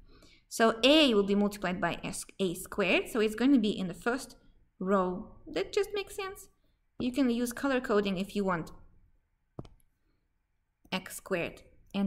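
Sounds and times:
stylus tapping tablet screen: 0:09.6 - 0:10.0.

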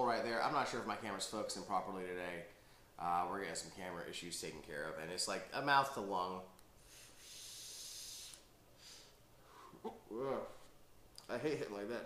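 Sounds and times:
high hiss of vape draw: 0:06.8 - 0:09.2.

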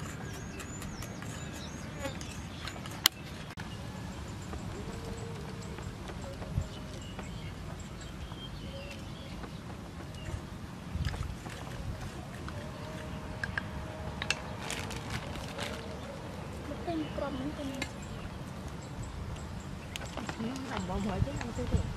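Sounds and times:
low wind rumble: 0:00.0 - 0:21.9.

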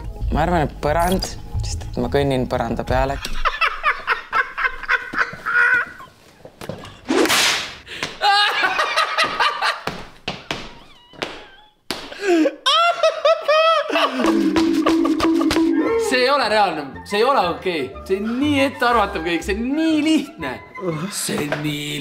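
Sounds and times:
men laughing hard: 0:03.2 - 0:06.2, 0:08.2 - 0:10.0, 0:12.2 - 0:16.1
sharp slaps and knocks: 0:07.1 - 0:08.2, 0:09.3 - 0:12.2.

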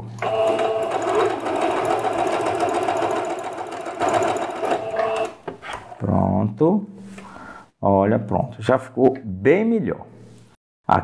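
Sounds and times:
sewing machine stitching: 0:00.0 - 0:06.0.

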